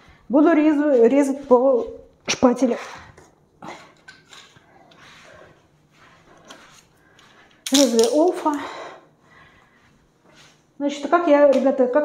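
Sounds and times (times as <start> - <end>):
tool handling rustling: 7.6 - 8.5.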